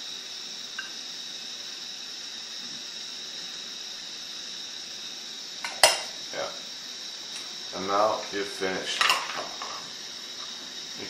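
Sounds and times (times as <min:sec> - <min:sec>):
glass lid clinking: 0:05.6 - 0:06.1.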